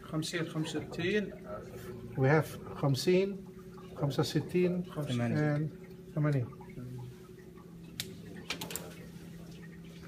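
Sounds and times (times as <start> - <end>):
cooling tower mechanical hum: 0.0 - 10.0.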